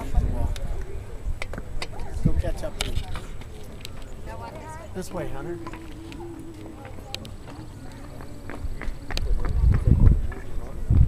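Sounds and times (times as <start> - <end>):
footsteps on a hard path: 1.4 - 11.0.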